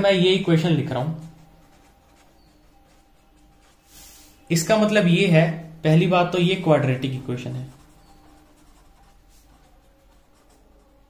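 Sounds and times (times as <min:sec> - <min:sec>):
pen writing on paper: 0:00.0 - 0:05.1, 0:06.3 - 0:11.0.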